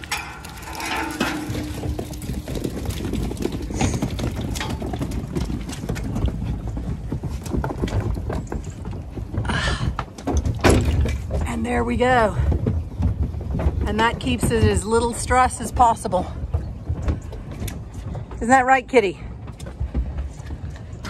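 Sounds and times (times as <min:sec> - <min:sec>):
hooves knocking on trailer floor: 0:00.0 - 0:21.0.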